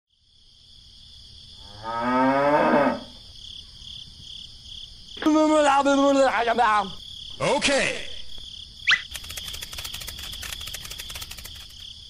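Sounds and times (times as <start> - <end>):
crickets chirring: 0.1 - 12.0
cow mooing: 1.6 - 3.2.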